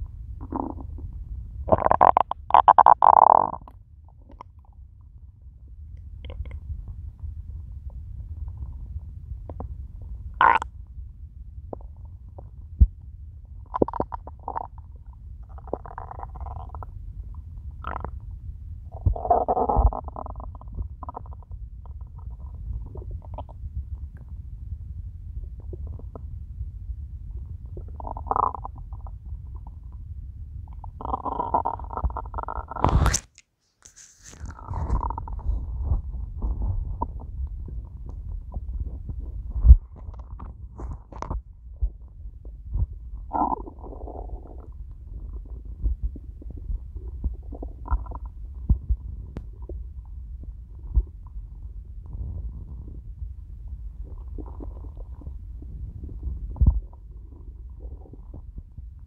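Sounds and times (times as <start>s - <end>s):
stomach growling and gurgling: 0.0s - 33.4s, 34.2s - 59.0s.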